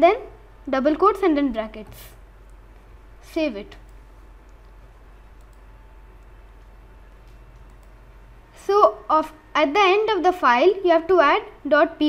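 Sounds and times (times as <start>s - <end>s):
low background hum: 0.0s - 12.0s
computer mouse clicks: 3.7s - 8.0s.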